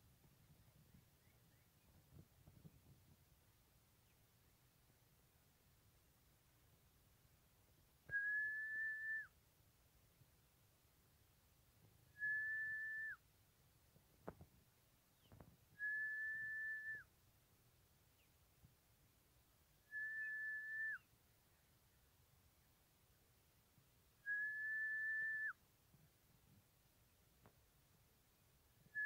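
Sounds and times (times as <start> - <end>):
long even whistles: 8.1 - 9.3, 12.1 - 13.2, 15.8 - 17.1, 19.9 - 21.1, 24.2 - 25.6.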